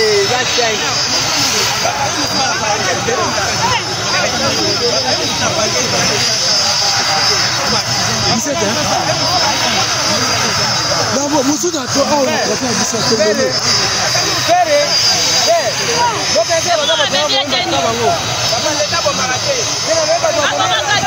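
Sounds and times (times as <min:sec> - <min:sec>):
helicopter engine running: 0:00.0 - 0:21.0
people talking and shouting: 0:00.0 - 0:21.0
thin steady whine: 0:00.0 - 0:21.0.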